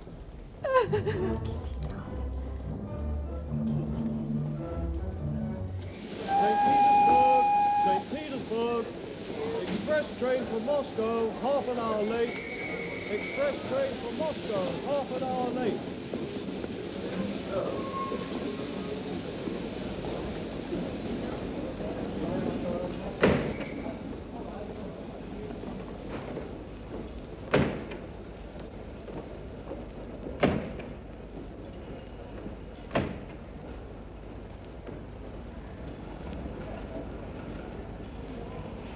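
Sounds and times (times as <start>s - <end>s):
steam whistle: 5.9s - 8.1s, 12.3s - 13.5s
steam locomotive blowing off steam: 5.9s - 21.3s
crowd chattering: 20.8s - 27.0s.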